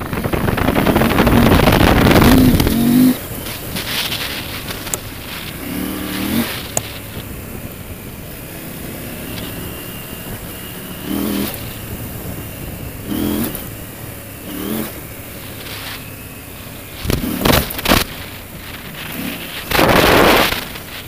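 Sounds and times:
motorcycle engine running: 0.0s - 21.0s
motorcycle throttle blips: 0.0s - 21.0s.

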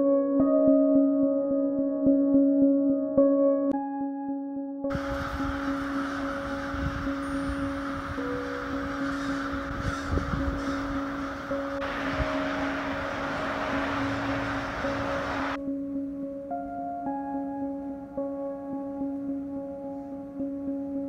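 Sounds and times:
soft background music: 0.0s - 21.0s
wind rumbling on microphone: 4.9s - 15.6s
birds calling: 5.2s - 15.6s.

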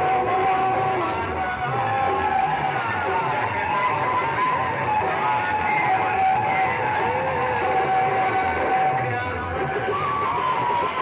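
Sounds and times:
loud music through loudspeakers: 0.0s - 11.0s.

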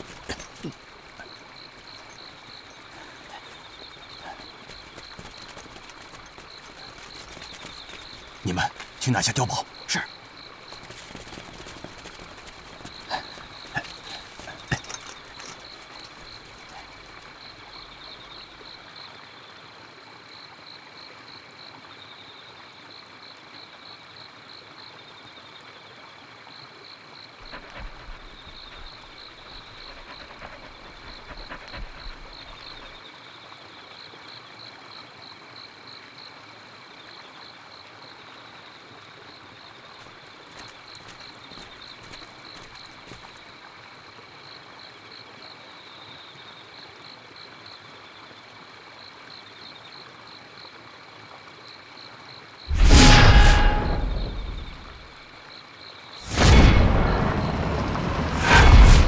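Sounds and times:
frogs and insects chirping: 0.0s - 59.0s
rustles and footfalls in brush: 3.4s - 9.0s, 10.6s - 16.7s, 40.0s - 43.4s.

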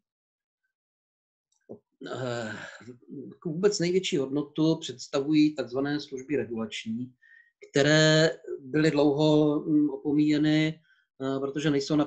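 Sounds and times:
man's drawn-out hesitation sound: 2.0s - 10.7s.

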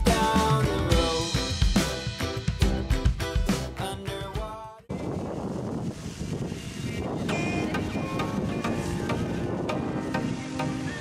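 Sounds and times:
background music: 0.0s - 4.8s, 7.2s - 11.0s
wind rumbling on microphone: 4.9s - 11.0s.

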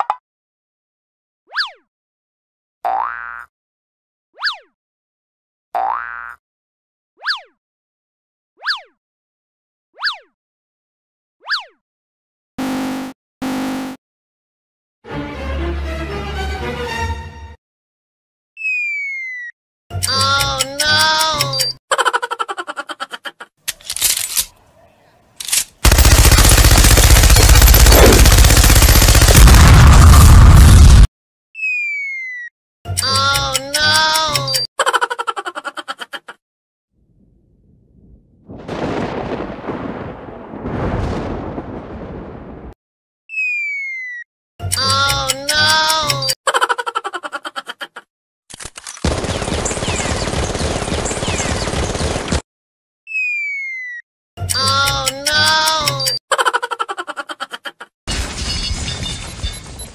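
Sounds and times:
machine gun firing: 25.8s - 30.3s, 49.0s - 52.4s
stuttering pitched pulses: 25.9s - 30.2s.

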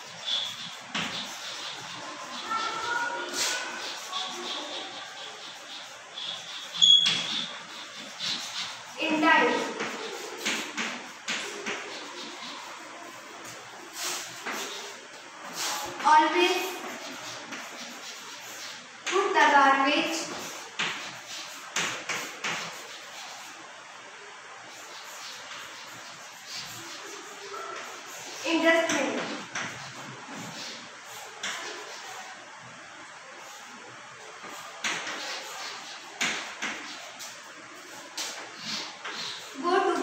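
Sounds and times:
chalk scratching on blackboard: 0.0s - 23.9s, 24.5s - 40.0s
high chalk squeak: 0.1s - 12.8s.

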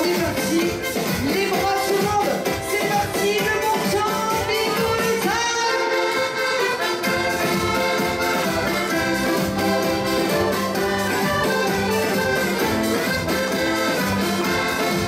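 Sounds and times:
accordion dance tune: 0.0s - 15.0s
steady beat: 0.0s - 15.0s.

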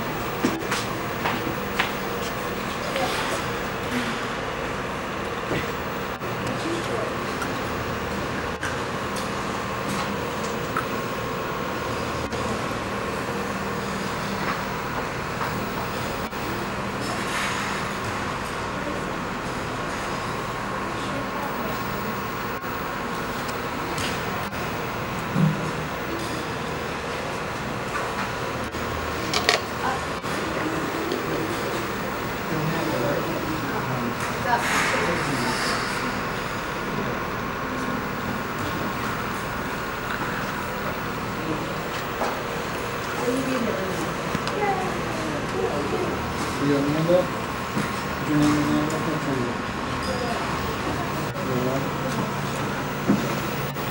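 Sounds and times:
machinery rumbling: 0.0s - 53.9s
mechanical hum: 0.0s - 53.9s.

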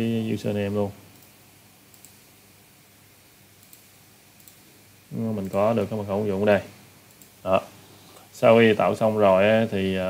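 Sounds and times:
steady low hiss: 0.0s - 10.0s.

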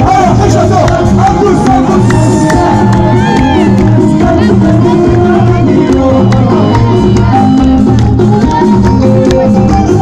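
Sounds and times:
live band music through speakers: 0.0s - 10.0s
person singing: 0.0s - 10.0s
steady bass: 0.0s - 10.0s.

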